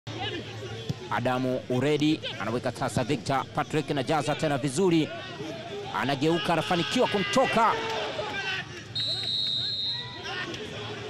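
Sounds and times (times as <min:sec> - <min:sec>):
referee's whistle blast: 0:09.0 - 0:10.2.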